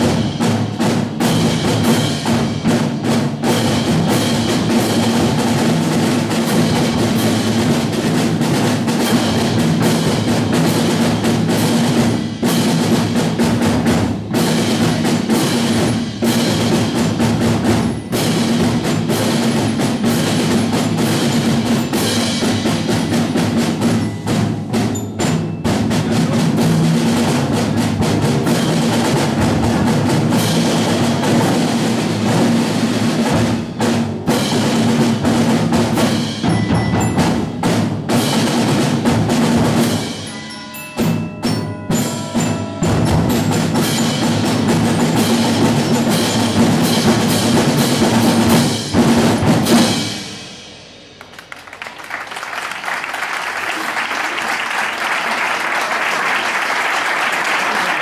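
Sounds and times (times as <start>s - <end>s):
snare drums: 0.0s - 58.0s
tubular bells ringing: 16.7s - 26.7s, 36.4s - 37.9s, 39.8s - 47.4s
marimbas and xylophones: 17.2s - 26.7s, 36.2s - 38.4s, 39.8s - 47.5s.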